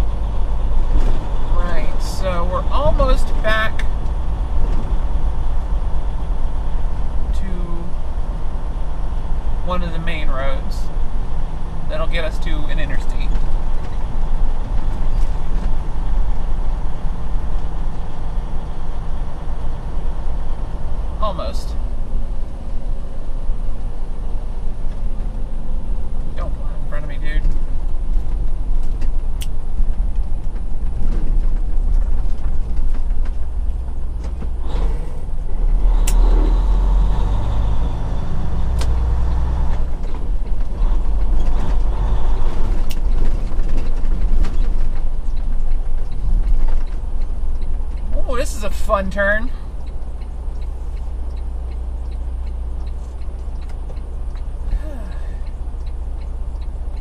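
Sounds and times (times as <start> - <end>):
diesel truck engine running: 0.0 - 57.0
cab rattles and creaks: 11.7 - 20.2, 23.8 - 35.7, 39.0 - 50.7.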